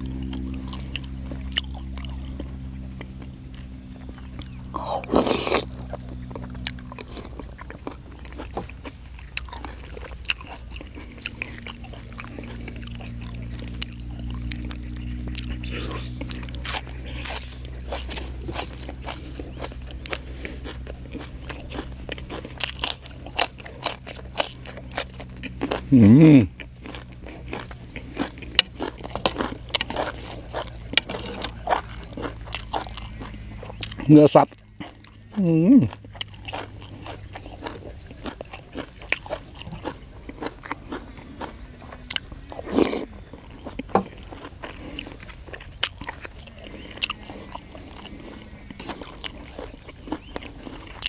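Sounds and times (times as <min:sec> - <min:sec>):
chewing and crunching food: 0:00.0 - 0:51.0.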